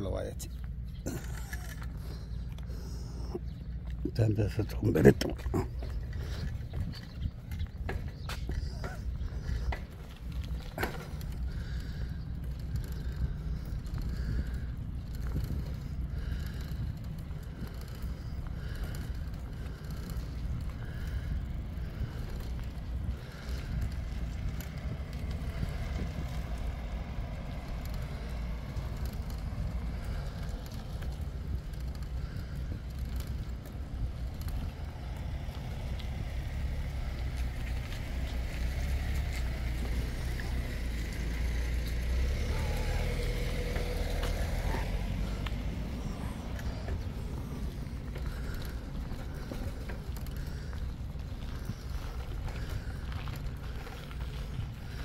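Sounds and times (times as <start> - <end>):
tyre and road noise: 0.0 - 55.0
wind rumble on microphone: 1.0 - 55.0.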